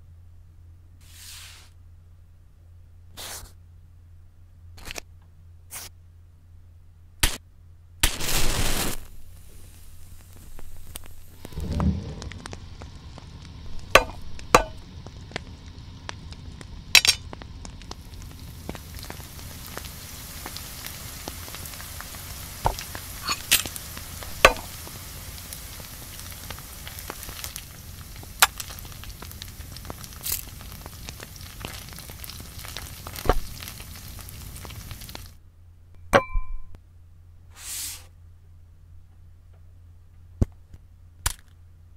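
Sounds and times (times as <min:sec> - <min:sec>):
food sizzling in pan: 0:08.1 - 0:35.4.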